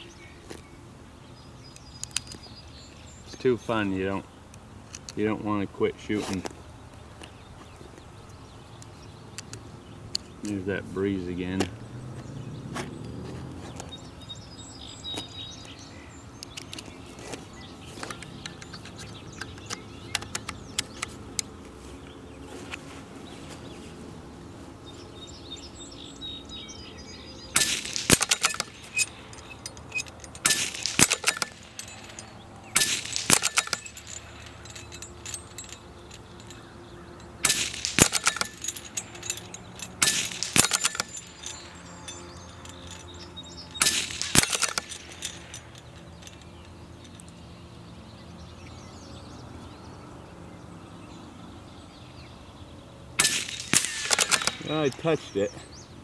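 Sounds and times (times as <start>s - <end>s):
rifle shots: 27.6s - 28.8s, 30.4s - 32.0s, 32.8s - 34.0s, 53.2s - 54.7s.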